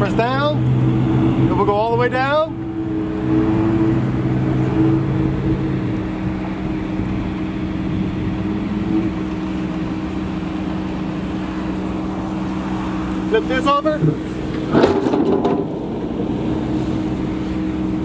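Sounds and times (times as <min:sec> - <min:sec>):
hydraulic lift gate humming: 0:13.9 - 0:18.0.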